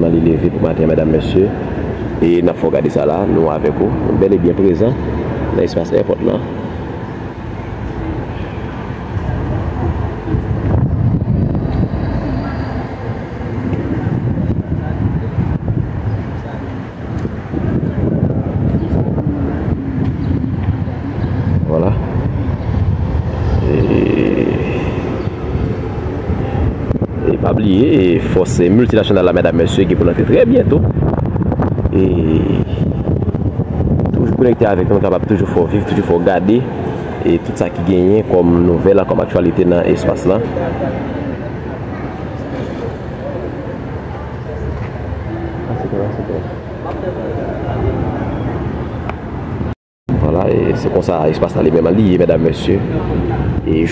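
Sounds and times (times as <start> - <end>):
faint voices: 0.0 - 31.0, 31.6 - 53.9
wind rumble on microphone: 0.0 - 53.9.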